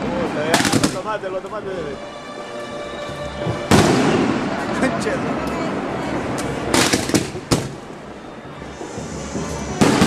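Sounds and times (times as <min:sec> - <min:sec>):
firework bang: 0:03.7 - 0:04.4, 0:09.7 - 0:10.0.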